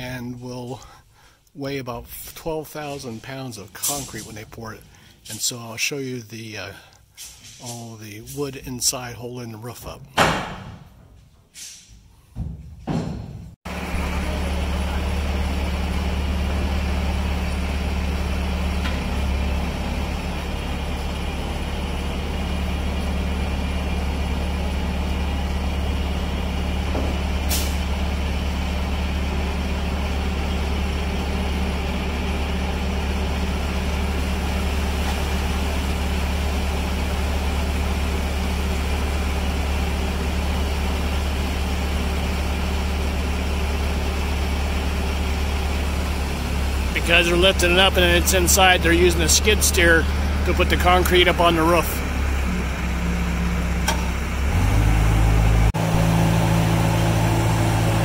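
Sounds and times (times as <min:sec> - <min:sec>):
diesel engine running: 0:00.0 - 0:10.0, 0:13.7 - 0:58.0.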